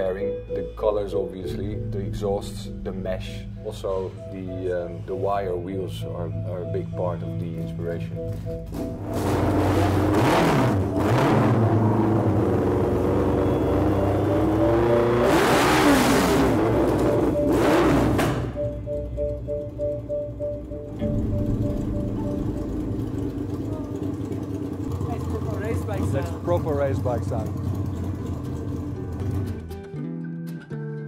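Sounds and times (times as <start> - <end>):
motorcycle engine revving: 8.6 - 19.4, 20.9 - 29.7.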